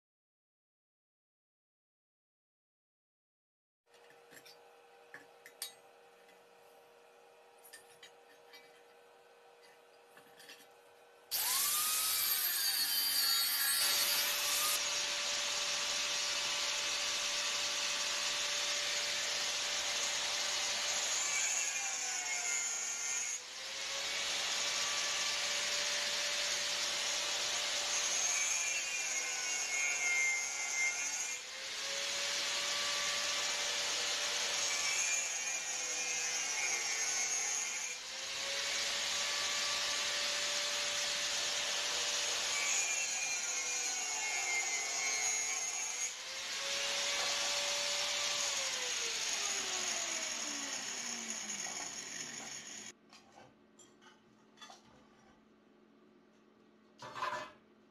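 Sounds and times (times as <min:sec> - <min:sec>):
angle grinder cutting sheet metal: 0:11.3 - 0:52.9.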